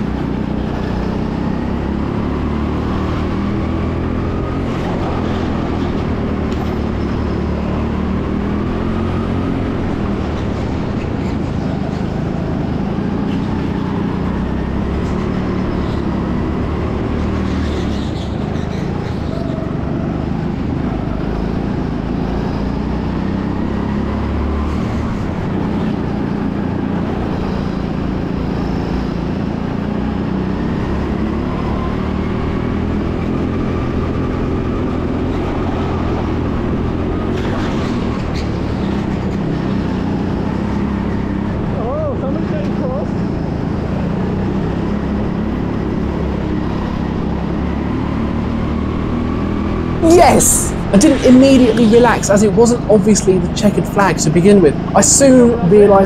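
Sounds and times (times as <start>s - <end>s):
go-kart motor running: 0.0s - 56.0s.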